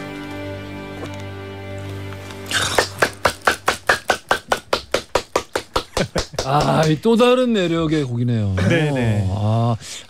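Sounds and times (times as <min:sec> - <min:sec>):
people clapping: 0:02.5 - 0:07.1.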